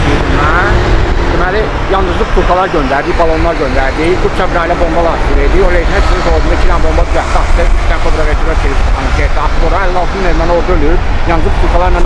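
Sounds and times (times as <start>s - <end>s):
man speaking: 0.0s - 12.0s
street traffic rumble: 0.0s - 12.0s.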